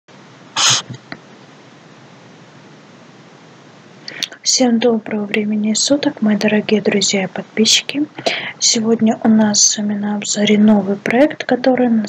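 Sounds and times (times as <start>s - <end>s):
steady hiss: 0.1s - 4.7s
sharp breathy burst: 0.6s - 1.0s, 8.2s - 8.6s.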